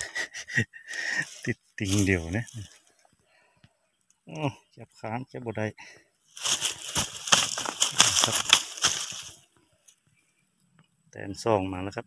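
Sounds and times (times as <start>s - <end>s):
dry leaves and twigs crackling: 0.0s - 3.4s, 6.2s - 10.1s
sharp crunches: 6.4s - 9.4s.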